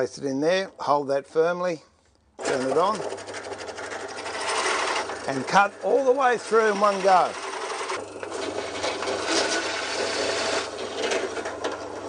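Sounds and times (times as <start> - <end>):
drill press motor hum: 2.4 - 12.0
fast mechanical rattle: 2.4 - 12.0.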